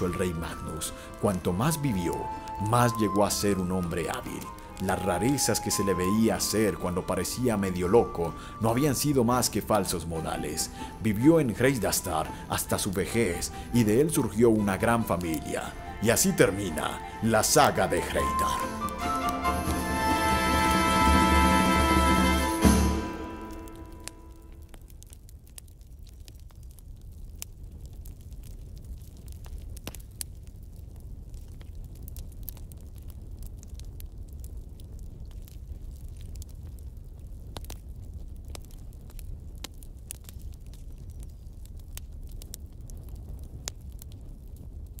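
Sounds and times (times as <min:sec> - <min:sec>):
music: 0:00.0 - 0:24.8
sharp crackles: 0:00.0 - 0:45.0.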